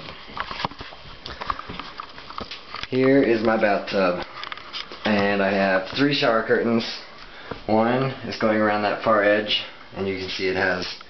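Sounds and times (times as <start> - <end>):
camera handling clicks and rustles: 4.2 - 5.1.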